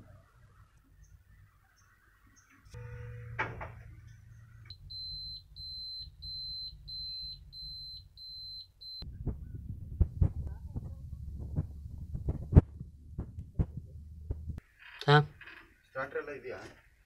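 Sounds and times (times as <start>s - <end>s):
low hum: 9.0s - 14.6s.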